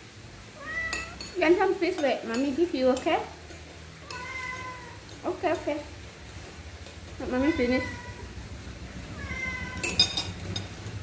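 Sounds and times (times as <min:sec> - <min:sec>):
cat meowing: 0:00.6 - 0:01.2, 0:04.0 - 0:05.0, 0:07.2 - 0:08.3, 0:09.1 - 0:10.2
spoon clinking against bowl: 0:00.8 - 0:03.2, 0:04.0 - 0:05.7, 0:09.8 - 0:10.8.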